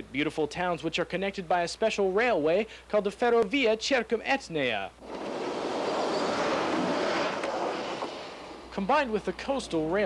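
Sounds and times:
diesel railcar passing: 5.0s - 9.9s.

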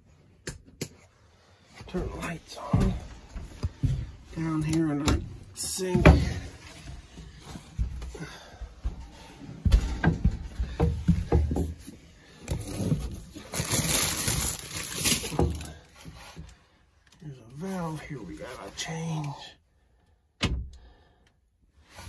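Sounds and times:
plastic rustling: 11.4s - 16.6s.

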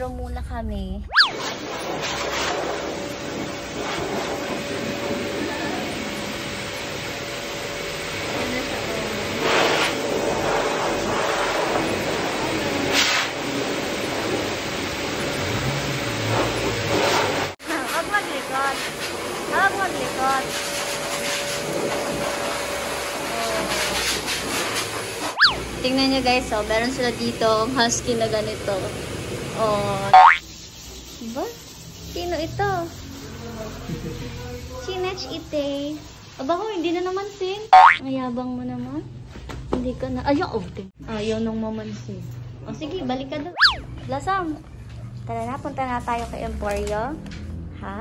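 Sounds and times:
electric motor whooshing air: 1.1s - 26.5s
electric grooming blower running: 1.4s - 30.4s.

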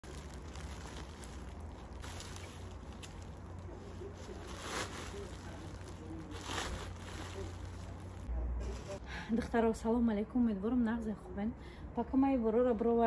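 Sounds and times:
plastic wrapping rustling: 0.0s - 9.0s.

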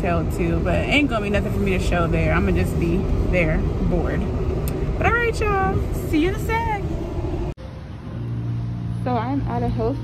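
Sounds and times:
low rumble inside car: 0.0s - 7.6s.

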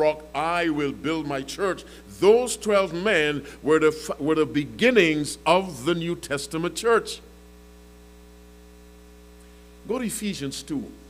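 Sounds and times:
man speaking: 0.0s - 7.2s, 9.8s - 11.0s
electrical mains hum: 0.0s - 11.0s.

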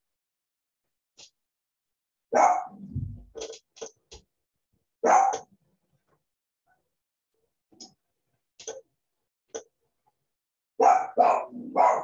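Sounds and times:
dog barking: 2.3s - 2.8s, 5.0s - 5.5s, 10.8s - 12.0s.

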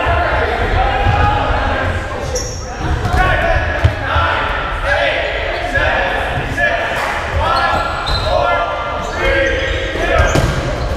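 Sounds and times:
players' voices echoing: 0.0s - 10.9s.

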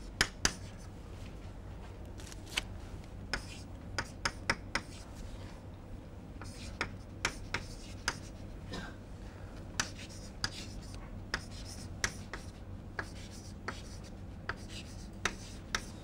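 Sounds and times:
low room hum: 0.0s - 16.0s
chalk tapping and scraping on blackboard: 0.1s - 0.8s, 3.3s - 5.0s, 6.4s - 8.4s, 9.8s - 16.0s.

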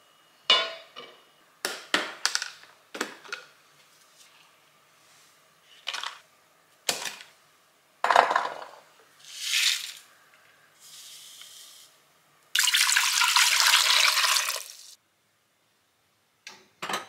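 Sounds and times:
powder pouring hiss: 9.2s - 10.1s, 10.8s - 12.0s
tap water running into a pot: 12.6s - 15.0s.

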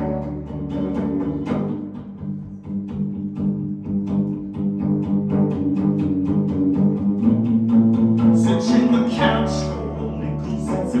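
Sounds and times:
electric guitars playing chords: 0.0s - 11.0s.

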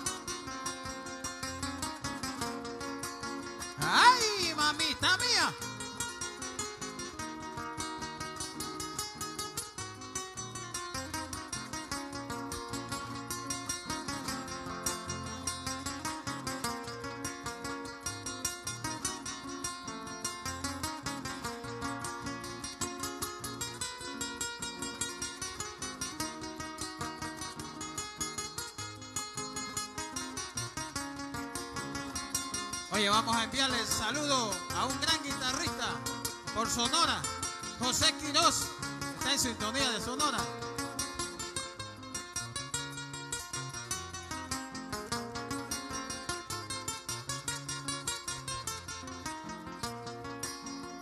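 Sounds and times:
acoustic guitar plucking fast: 0.0s - 51.0s.

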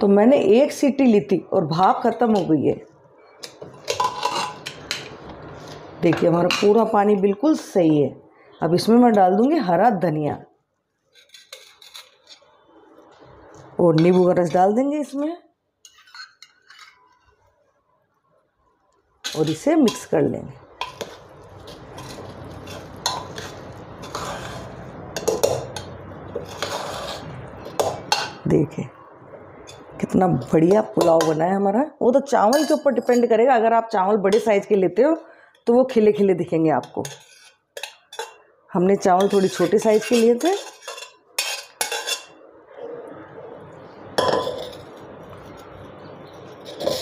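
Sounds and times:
spoon scraping metal pot: 3.5s - 5.8s, 11.1s - 12.6s, 13.9s - 14.6s, 15.8s - 17.3s, 19.2s - 20.1s, 20.8s - 28.4s, 36.8s - 38.4s, 39.1s - 42.4s, 46.3s - 47.0s.

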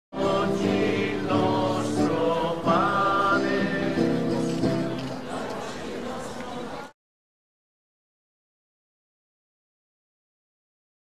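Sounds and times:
choir singing religious song: 0.1s - 6.9s.

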